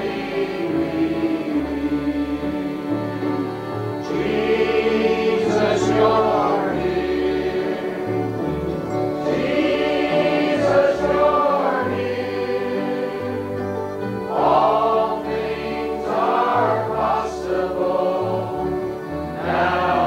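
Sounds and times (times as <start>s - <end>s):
choir singing a hymn: 0.0s - 20.0s
instrumental accompaniment: 0.0s - 20.0s.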